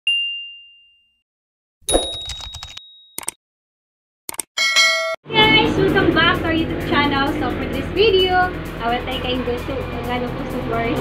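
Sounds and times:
bright ding: 1.9s - 3.1s, 4.6s - 5.2s.

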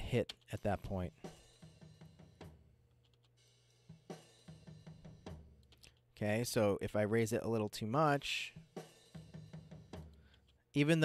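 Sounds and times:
drum and cymbal hits: 1.1s - 2.7s, 3.4s - 5.6s, 8.3s - 10.2s.

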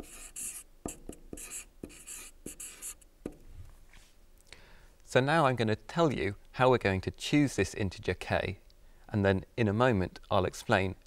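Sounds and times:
marker pen scratching on whiteboard: 0.0s - 3.4s.

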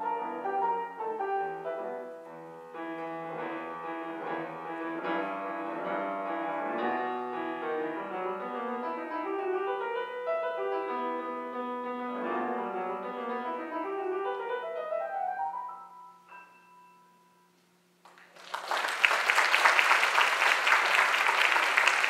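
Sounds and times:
grand piano playing: 0.0s - 17.6s.

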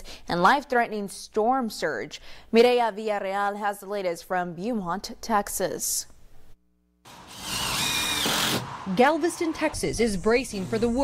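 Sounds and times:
power drill driving screw: 7.1s - 8.7s.

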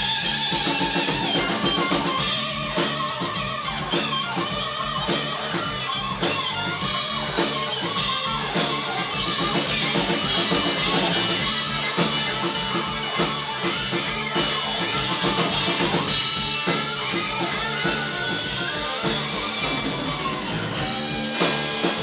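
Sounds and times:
drum kit: 0.0s - 22.0s
electric guitars: 0.0s - 22.0s.

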